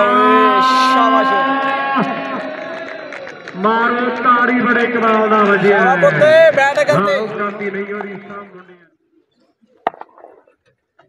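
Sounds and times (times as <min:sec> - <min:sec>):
man's long drawn-out call: 0:00.0 - 0:03.3.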